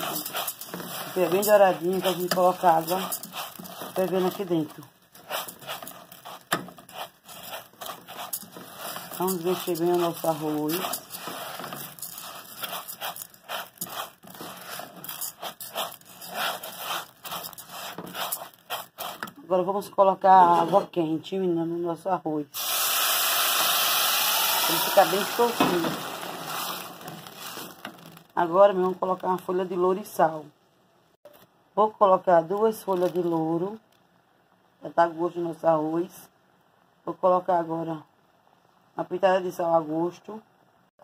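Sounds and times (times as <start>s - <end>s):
hot water hissing and bubbling: 0.0s - 19.3s, 22.6s - 27.9s
spatula stirring rice grains: 0.0s - 19.4s, 24.6s - 28.2s.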